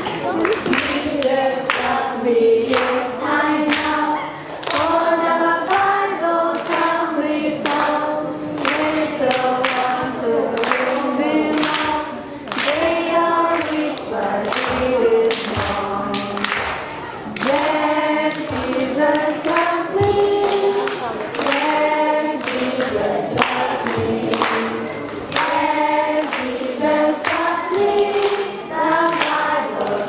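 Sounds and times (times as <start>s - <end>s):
children's choir singing: 0.0s - 30.0s.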